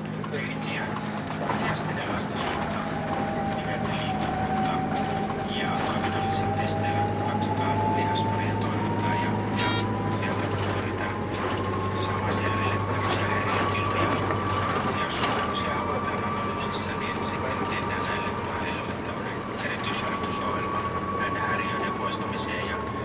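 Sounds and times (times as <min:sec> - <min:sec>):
bus engine drone: 0:00.0 - 0:23.0
rising engine whine: 0:00.0 - 0:23.0.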